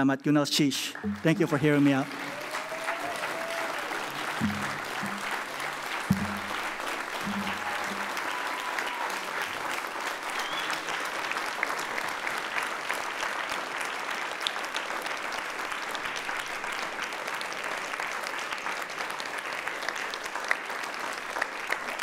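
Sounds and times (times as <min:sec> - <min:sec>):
large audience applause: 0:00.8 - 0:22.0.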